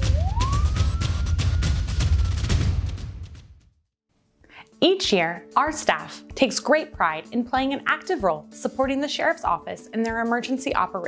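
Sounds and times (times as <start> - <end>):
police siren wail: 0.0 - 2.2
music with fast drums and bass: 0.0 - 3.4.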